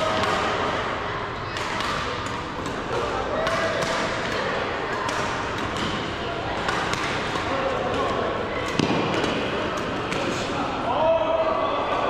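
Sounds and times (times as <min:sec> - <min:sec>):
distant chatter: 0:00.0 - 0:12.0
rackets striking shuttlecock: 0:01.5 - 0:10.5.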